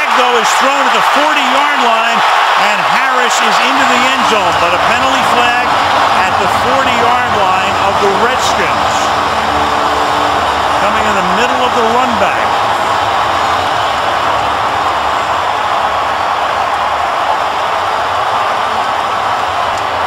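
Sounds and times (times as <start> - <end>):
stadium crowd cheering: 0.0 - 20.0.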